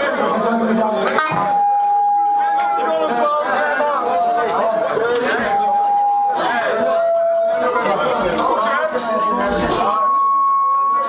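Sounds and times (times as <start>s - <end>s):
crowd chatter: 0.0s - 11.0s
held electric guitar tone: 0.7s - 2.8s.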